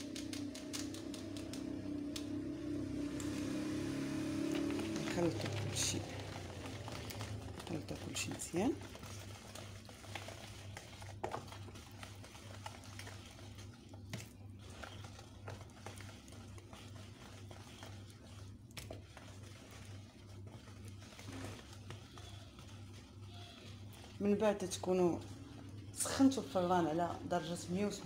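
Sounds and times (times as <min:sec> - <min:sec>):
whisk stirring batter: 0:00.0 - 0:28.0
whisk clicking against bowl: 0:04.9 - 0:25.7.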